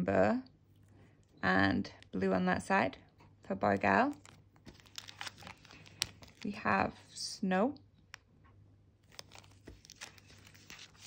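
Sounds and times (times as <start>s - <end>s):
plastic film crinkling: 3.8s - 7.0s, 9.0s - 11.0s.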